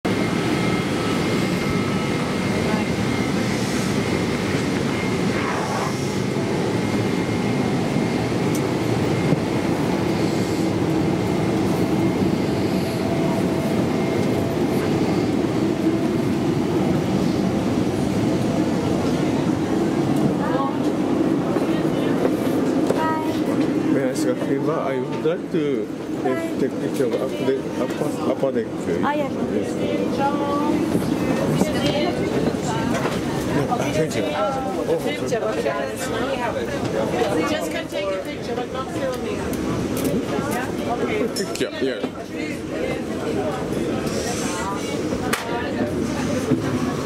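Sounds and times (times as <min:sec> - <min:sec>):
airliner cabin drone: 0:00.1 - 0:47.0
murmur of passengers' voices: 0:00.1 - 0:47.0.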